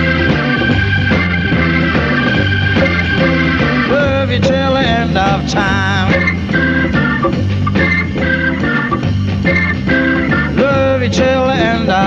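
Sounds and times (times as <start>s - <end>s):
bass: 0.0s - 12.0s
drums: 0.0s - 12.0s
organ playing short chords: 0.0s - 12.0s.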